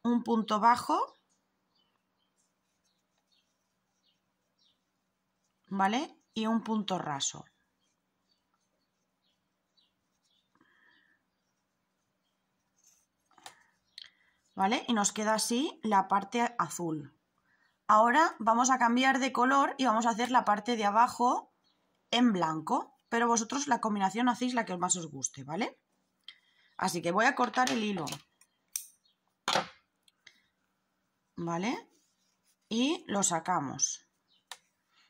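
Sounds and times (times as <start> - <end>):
faint clicks and rustles of crochet: 7.8 - 14.6, 27.5 - 30.7, 34.2 - 35.0.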